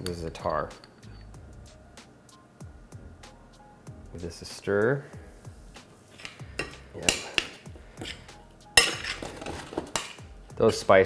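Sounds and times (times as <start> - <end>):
metal spoon scraping skillet: 6.0 - 10.3.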